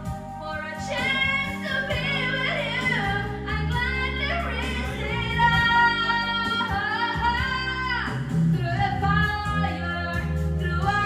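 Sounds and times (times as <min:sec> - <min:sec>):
karaoke backing track: 0:00.0 - 0:11.0
woman singing into microphone: 0:00.0 - 0:11.0.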